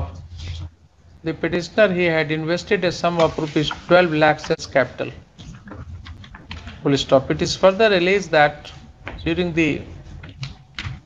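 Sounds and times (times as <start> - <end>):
low room hum: 0.0 - 11.0
man talking: 1.2 - 5.2, 6.8 - 9.9
computer keyboard typing: 5.6 - 6.9.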